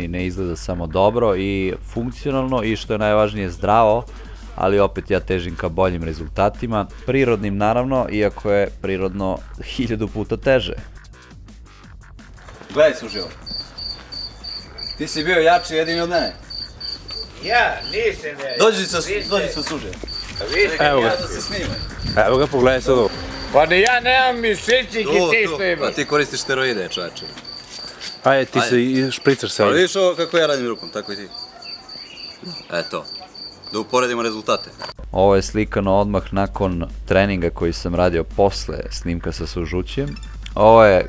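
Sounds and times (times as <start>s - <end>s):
man's voice: 0.0s - 11.0s, 17.4s - 27.4s, 33.8s - 41.0s
cricket chirping: 12.6s - 35.0s.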